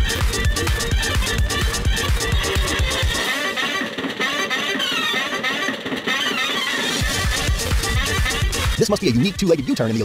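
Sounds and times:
bass beat: 0:00.0 - 0:03.3, 0:07.0 - 0:09.8.

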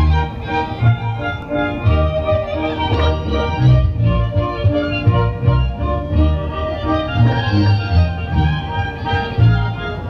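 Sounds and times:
clarinet: 0:00.0 - 0:10.0
double bass pulsing beat: 0:00.0 - 0:10.0
fiddles playing melody: 0:00.0 - 0:10.0.

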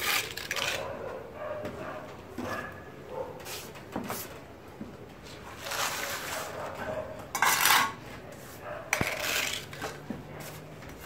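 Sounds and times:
hand float scraping mortar: 0:05.5 - 0:06.7, 0:07.3 - 0:11.0.

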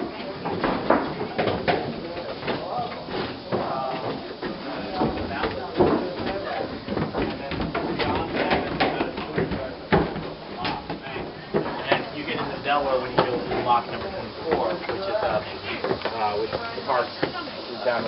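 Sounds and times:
footsteps: 0:00.0 - 0:18.0
people talking indistinctly: 0:00.0 - 0:18.0
knocks on wooden boards: 0:00.3 - 0:17.4.

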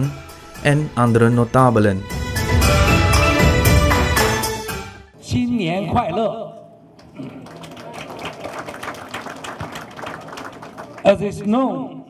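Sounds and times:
audience applauding: 0:07.0 - 0:11.5.

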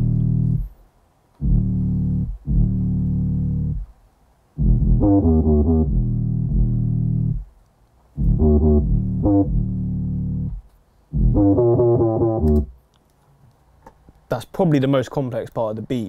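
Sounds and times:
distorted sliding bass notes: 0:00.0 - 0:00.7, 0:01.4 - 0:03.9, 0:04.6 - 0:07.5, 0:08.2 - 0:12.7.

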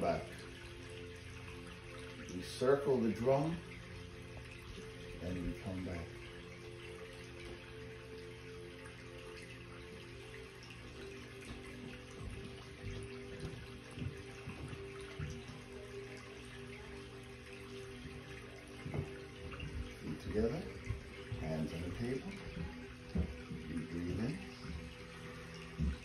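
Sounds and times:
soft slow background music: 0:00.0 - 0:26.0.

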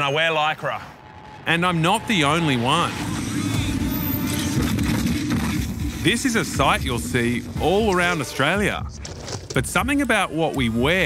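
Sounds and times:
car passing: 0:00.0 - 0:06.2
wind rushing: 0:00.8 - 0:05.0.

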